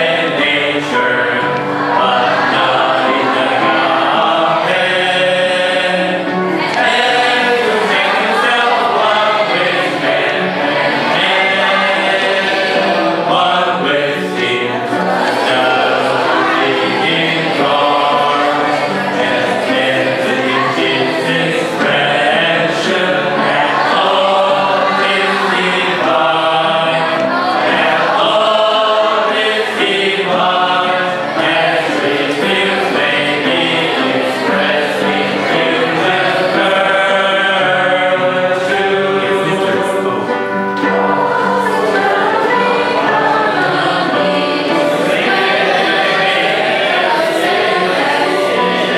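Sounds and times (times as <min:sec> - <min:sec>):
group singing a hymn: 0:00.0 - 0:48.9.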